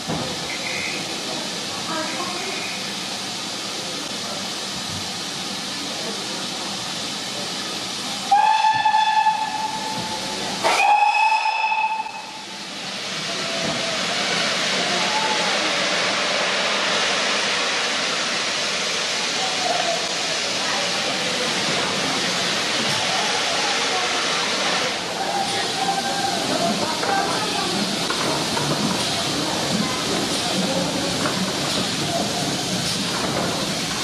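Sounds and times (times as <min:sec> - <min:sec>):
steam hissing: 0:00.0 - 0:34.0
steam locomotive whistle: 0:00.5 - 0:01.1, 0:08.3 - 0:12.4.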